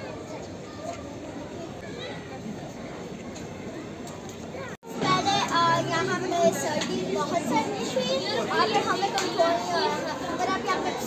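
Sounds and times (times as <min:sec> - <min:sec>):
children chattering and calling out: 0:00.0 - 0:11.0
outdoor crowd and street ambience: 0:00.0 - 0:11.0.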